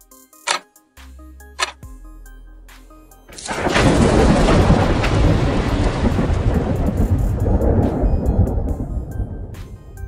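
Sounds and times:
thunder-like rumble: 3.3 - 10.0.

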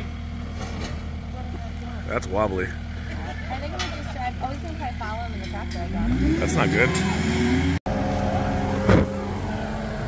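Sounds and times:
steady vehicle hum: 0.0 - 10.0
truck engine accelerating: 0.0 - 10.0.

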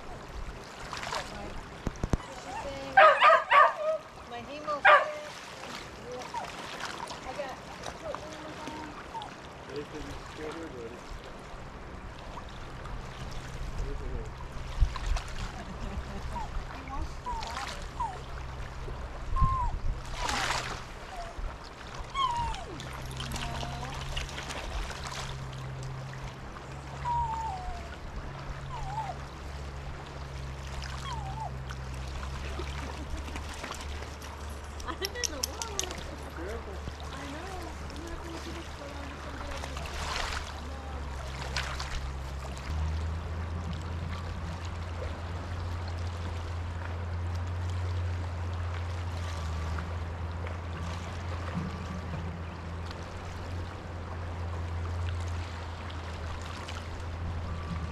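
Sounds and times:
rushing river: 0.0 - 57.9
water splash: 0.0 - 57.9
small dog yipping and whining: 2.2 - 4.1, 17.2 - 18.4, 19.2 - 21.4, 22.0 - 23.2, 27.0 - 28.0, 28.6 - 29.2, 31.0 - 31.6.

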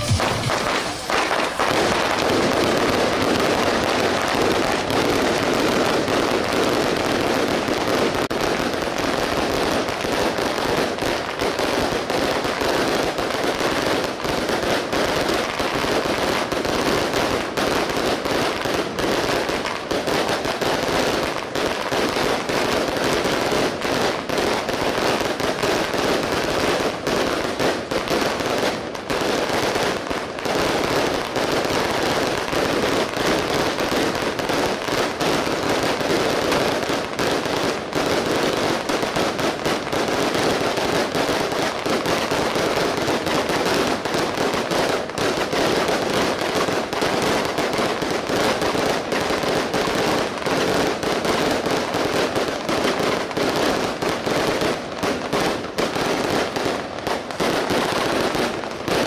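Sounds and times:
firecrackers rattling: 0.0 - 59.0.

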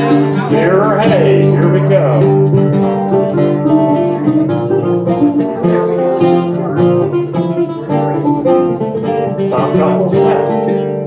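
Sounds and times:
bouzouki and guitar strumming: 0.0 - 11.0
recorder melody: 0.0 - 11.0.

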